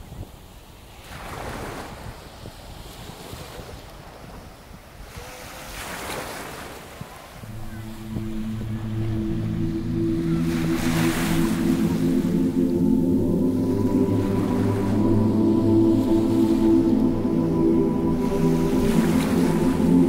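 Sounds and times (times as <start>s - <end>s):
low sustained musical chord: 7.4s - 20.0s
ocean surf rolling: 7.4s - 20.0s.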